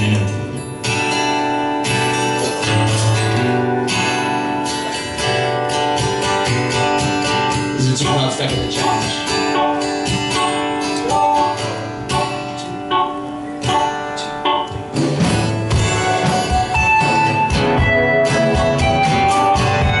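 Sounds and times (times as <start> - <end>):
drums: 0.0 - 20.0
electric guitar: 0.0 - 20.0
strummed acoustic guitar: 0.0 - 20.0.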